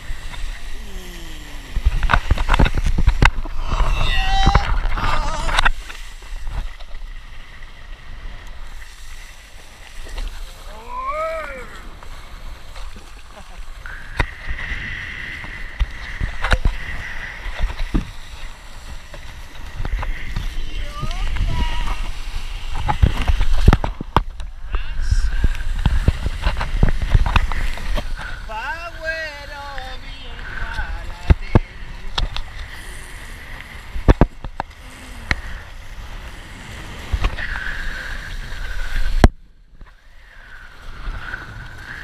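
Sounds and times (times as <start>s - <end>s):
board slapping water: 0.0s - 42.0s
wind rumbling on microphone: 0.0s - 42.0s
wind buffeting microphone: 14.1s - 29.0s.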